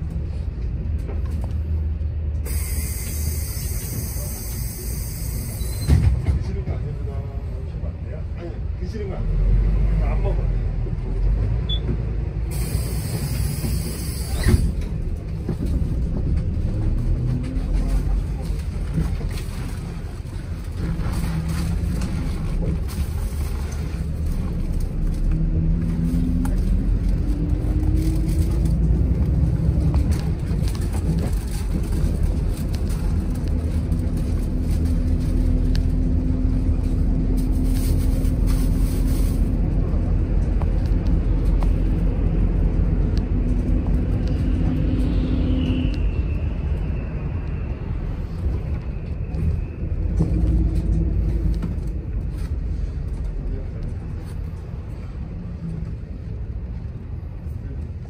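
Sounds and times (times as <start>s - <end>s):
bus engine and road rumble: 0.0s - 58.0s
faint high squeal: 44.9s - 49.8s.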